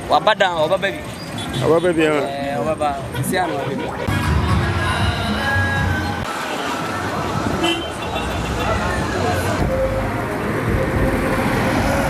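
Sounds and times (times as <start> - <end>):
vehicles passing on street: 0.0 - 12.0
vehicle horn: 3.1 - 6.2, 7.6 - 9.0.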